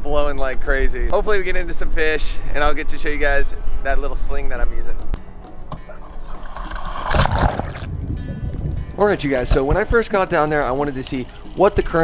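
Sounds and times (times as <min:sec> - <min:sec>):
water sloshing and splashing: 0:05.7 - 0:12.0
underwater bubbling: 0:05.9 - 0:09.6.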